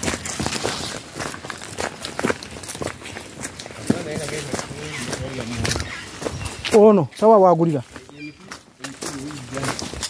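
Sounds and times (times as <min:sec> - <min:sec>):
footsteps on dirt path: 0:00.0 - 0:10.0.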